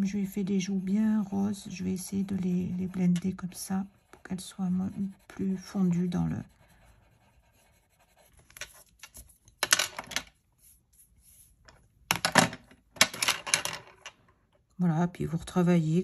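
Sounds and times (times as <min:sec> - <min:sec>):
drawing tools scratching paper: 0:00.0 - 0:09.6.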